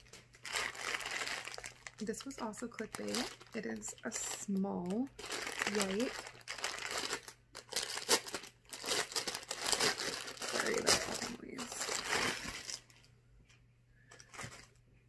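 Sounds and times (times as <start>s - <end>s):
plastic bag crinkling: 0.0s - 13.1s, 14.1s - 14.8s.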